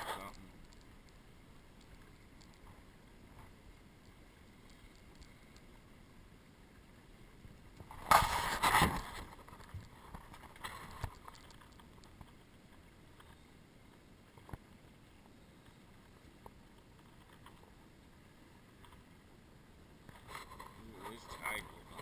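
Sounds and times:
water splashing against hull: 0:07.3 - 0:13.0.

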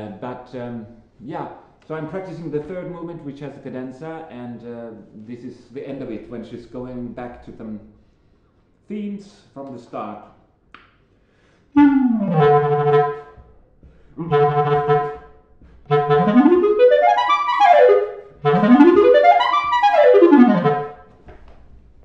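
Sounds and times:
solo clarinet: 0:11.8 - 0:13.5, 0:14.2 - 0:21.1.

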